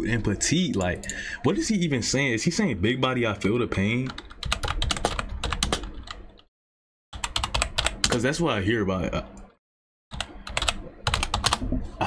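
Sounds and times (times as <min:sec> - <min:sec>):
fast typing on keyboard: 0:04.1 - 0:06.2, 0:07.2 - 0:08.2, 0:10.1 - 0:11.6.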